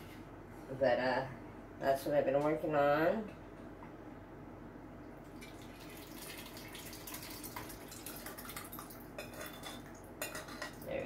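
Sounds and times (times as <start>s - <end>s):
liquid dripping and splashing: 5.2s - 10.1s
kitchenware clinking: 9.2s - 11.0s.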